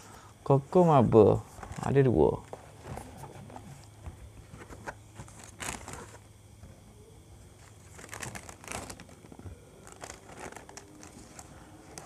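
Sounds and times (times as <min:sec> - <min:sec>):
paper liner crinkling: 0:04.5 - 0:06.2, 0:07.6 - 0:12.0.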